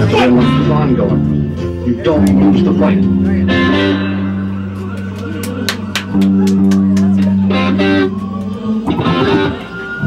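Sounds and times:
electric guitar and bass chord: 0:00.0 - 0:10.0.

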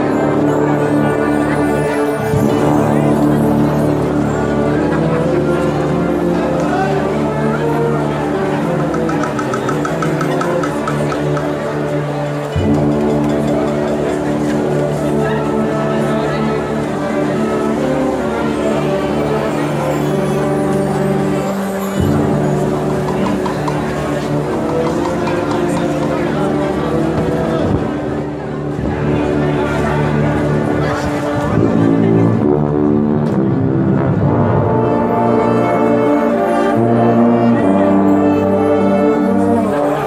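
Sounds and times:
low brass notes: 0:00.0 - 0:40.0
marching band playing: 0:00.0 - 0:40.0.

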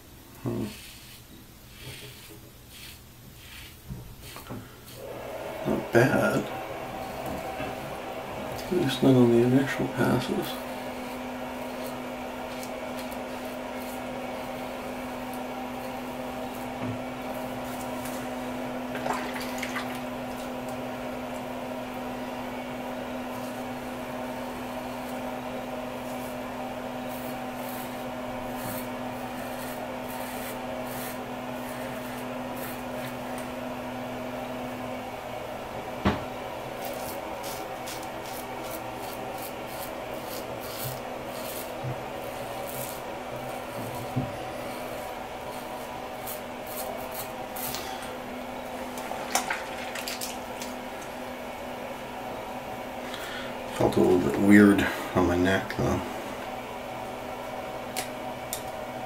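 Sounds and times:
background hum: 0:00.0 - 0:59.0
razor scraping stubble: 0:00.4 - 0:05.1, 0:07.0 - 0:07.6, 0:08.4 - 0:18.6, 0:22.6 - 0:33.5, 0:36.6 - 0:48.1.

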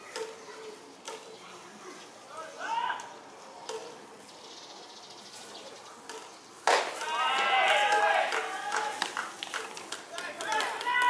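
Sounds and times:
people shouting calls: 0:02.3 - 0:03.2, 0:06.9 - 0:09.4, 0:10.0 - 0:11.0
baseball popping into mitt: 0:06.6 - 0:10.6.

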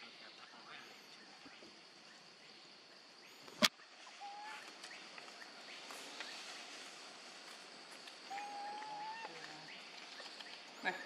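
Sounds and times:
high insect hum: 0:00.0 - 0:11.0
animal whistled call: 0:08.3 - 0:09.4.

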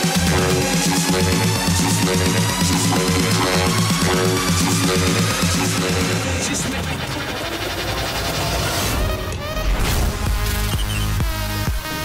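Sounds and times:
loud electronic dance music: 0:00.0 - 0:09.3, 0:10.2 - 0:12.0.

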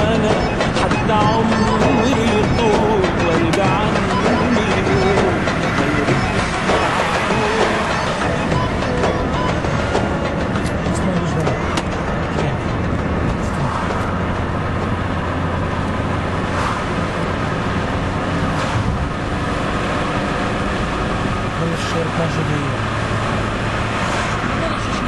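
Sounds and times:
indistinct voices: 0:00.0 - 0:15.4, 0:21.5 - 0:25.0
car engine and road noise: 0:00.0 - 0:25.0.

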